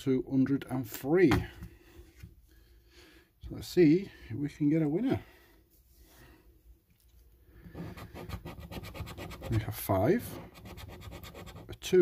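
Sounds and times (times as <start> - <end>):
coin scratching scratch card: 7.8 - 9.6, 10.5 - 11.7.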